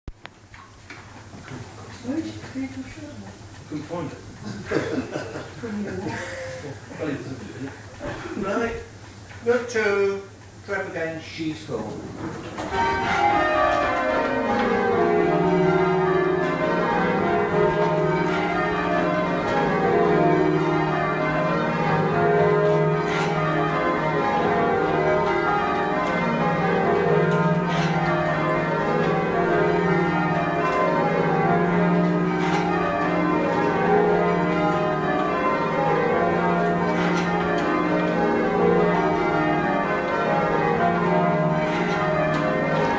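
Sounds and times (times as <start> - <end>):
church bells change ringing: 12.5 - 42.9.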